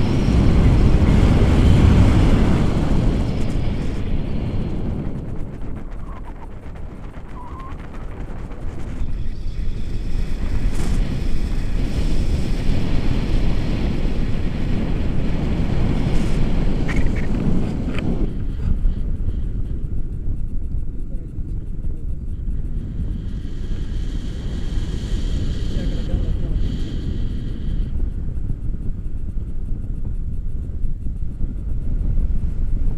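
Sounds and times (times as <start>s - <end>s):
wind buffeting microphone: 0.0s - 32.9s.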